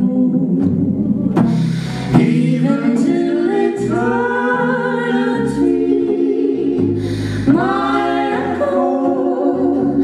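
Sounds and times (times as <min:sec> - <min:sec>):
electric bass: 0:00.0 - 0:10.0
people singing in close harmony: 0:02.0 - 0:10.0.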